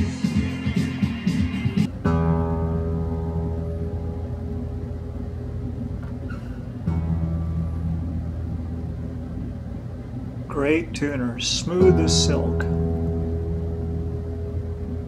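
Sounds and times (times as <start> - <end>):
acoustic guitar string plucked: 1.9 - 10.2, 11.7 - 15.0.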